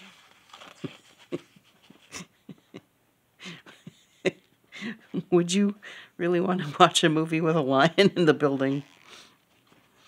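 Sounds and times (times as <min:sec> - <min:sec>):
woman's breathy laughter: 0:00.8 - 0:05.2.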